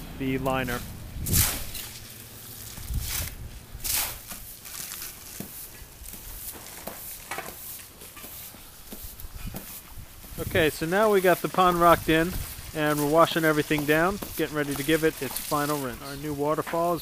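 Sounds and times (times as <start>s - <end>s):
faint outdoor hiss: 0.0s - 17.0s
short scuffs: 0.8s - 2.1s.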